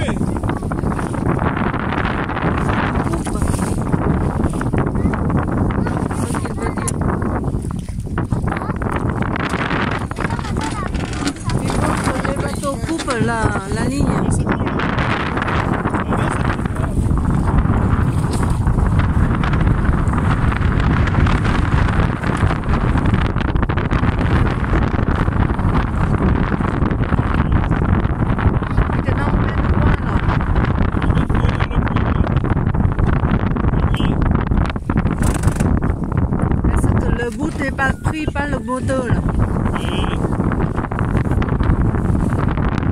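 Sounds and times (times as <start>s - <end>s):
water splashing against boat hull: 0.0s - 42.9s
wind buffeting microphone: 0.0s - 42.9s.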